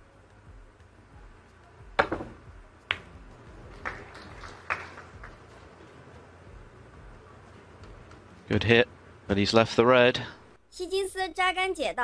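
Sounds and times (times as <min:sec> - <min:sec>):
cue tip striking ball: 0:02.0 - 0:03.2, 0:03.8 - 0:05.5
snooker balls clicking: 0:02.0 - 0:05.8.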